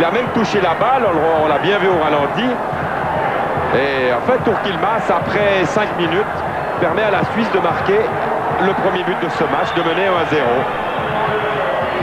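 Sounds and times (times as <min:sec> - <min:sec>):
man talking: 0:00.0 - 0:02.6, 0:03.7 - 0:10.7
stadium crowd noise: 0:00.0 - 0:12.0.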